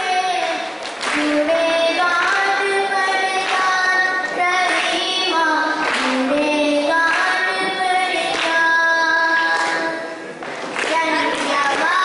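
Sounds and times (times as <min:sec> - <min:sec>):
child singing through loudspeakers: 0:00.0 - 0:12.0.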